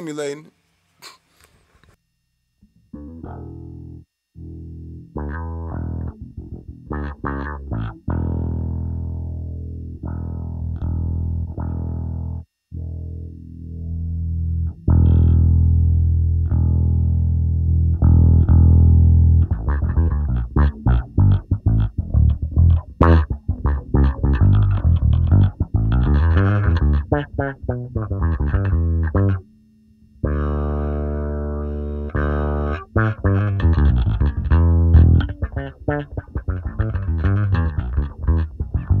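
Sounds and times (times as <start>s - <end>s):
electric bass with auto-wah: 2.6s - 39.0s.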